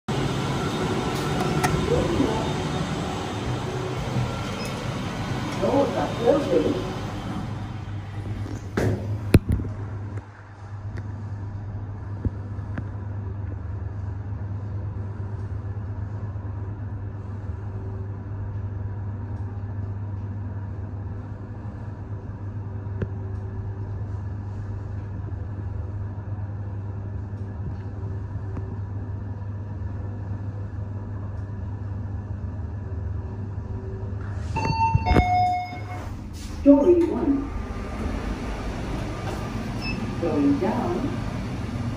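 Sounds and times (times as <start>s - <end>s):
lift car hum and rumble: 0.0s - 41.9s.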